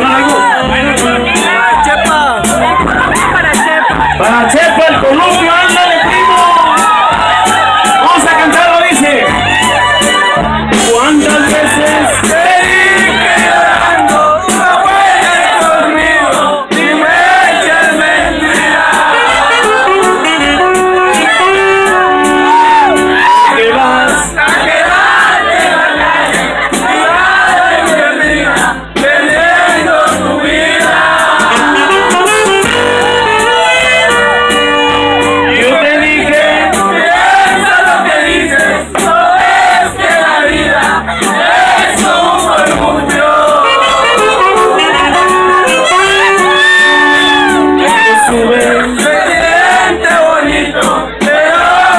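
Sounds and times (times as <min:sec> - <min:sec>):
live band music: 0:00.0 - 0:51.9
saxophone long held notes: 0:19.1 - 0:23.5, 0:31.5 - 0:36.5, 0:43.4 - 0:48.5.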